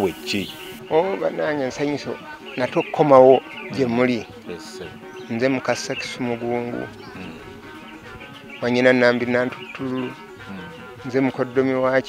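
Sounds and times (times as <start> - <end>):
man speaking: 0.0 - 7.4.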